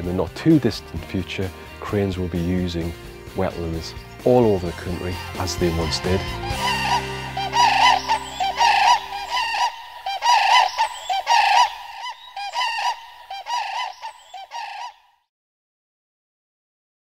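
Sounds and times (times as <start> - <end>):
sustained music chord: 4.5 - 9.7
cranes honking calls: 5.0 - 15.2.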